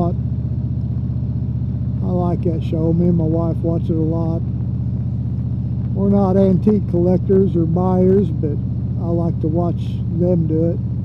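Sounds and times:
motorcycle engine cruising: 0.0s - 11.0s
wind and road noise: 0.0s - 11.0s.

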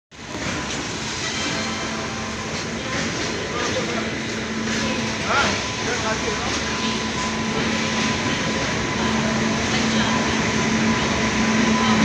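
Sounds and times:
electric locomotive approaching: 0.1s - 12.0s
voices in background: 2.3s - 12.0s.

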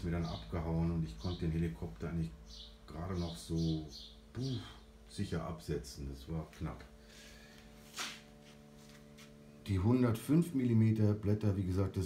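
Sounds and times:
steady low hum: 0.0s - 12.0s
soft hiss: 6.3s - 9.8s.

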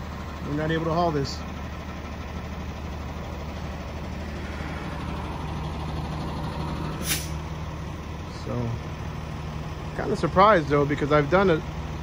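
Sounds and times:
diesel truck engine running: 0.0s - 12.0s
sharp hiss: 7.0s - 7.4s.

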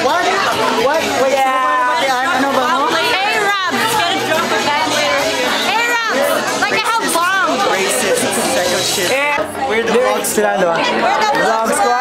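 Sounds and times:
crowd chatter: 0.0s - 12.0s
people talking and exclaiming: 0.0s - 12.0s.

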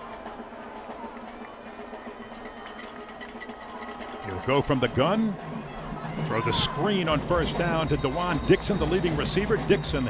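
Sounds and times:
stadium background noise: 0.0s - 10.0s
band music with percussion: 2.1s - 10.0s.

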